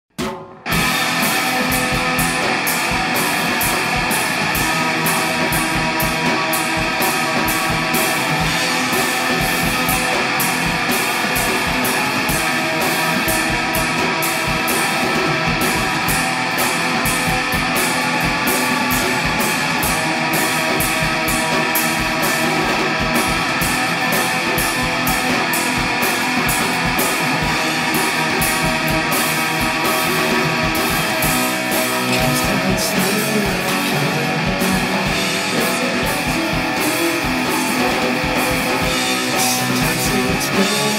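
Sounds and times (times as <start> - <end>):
distorted electric guitar strumming: 0.1 - 40.9
steady drum beat: 0.1 - 40.9.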